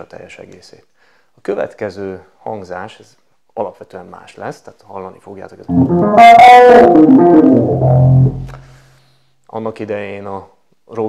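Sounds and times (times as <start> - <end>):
electric piano phrase: 5.7 - 8.5.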